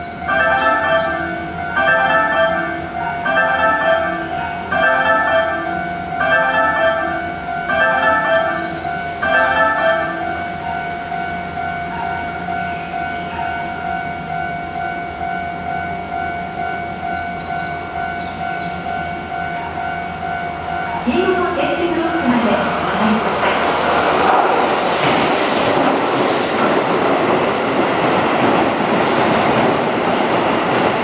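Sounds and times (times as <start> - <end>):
bell-like warning chime: 0.2 - 21.3.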